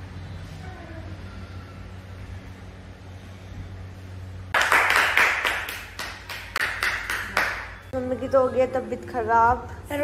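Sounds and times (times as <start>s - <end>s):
low steady hum: 0.0s - 10.0s
rapid hand clapping: 4.5s - 7.8s.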